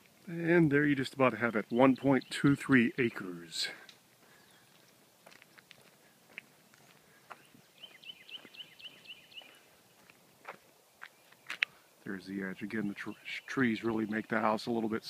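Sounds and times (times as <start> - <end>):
footsteps on grass: 3.0 - 12.2.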